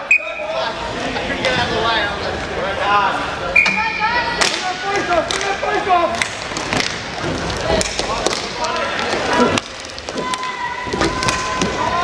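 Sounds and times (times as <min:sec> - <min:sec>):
hockey sticks clacking: 0:03.6 - 0:12.0.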